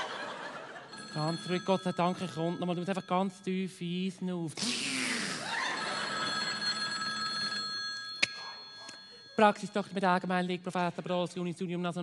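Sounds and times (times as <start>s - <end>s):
high ringing tones: 0.8s - 4.4s, 5.5s - 10.4s.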